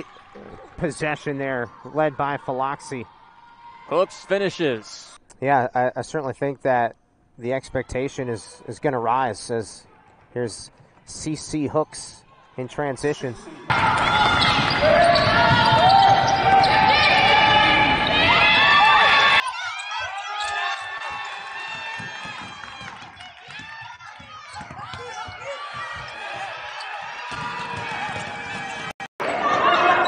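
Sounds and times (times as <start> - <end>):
sneakers squeaking: 13.5 - 18.6, 19.4 - 22.9, 23.5 - 30.0
basketball bouncing: 13.7 - 16.7, 21.6 - 26.6, 27.2 - 28.9.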